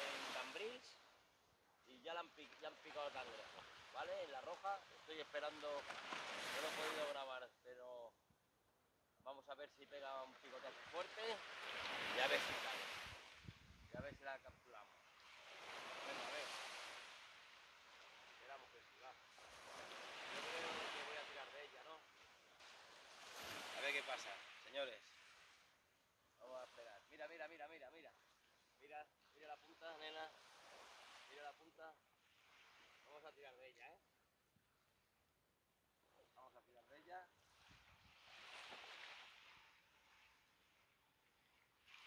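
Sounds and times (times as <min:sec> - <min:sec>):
faint sea surf: 0:00.0 - 0:08.2, 0:09.2 - 0:35.2, 0:35.8 - 0:42.0.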